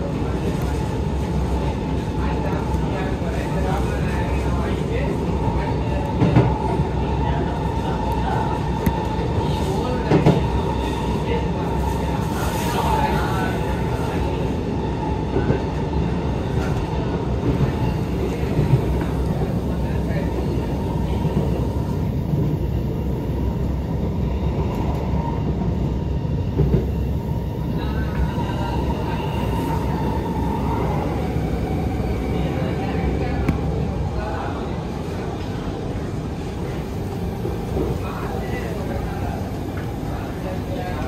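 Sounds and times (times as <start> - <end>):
train wheels rumbling on rail: 0.0 - 41.0.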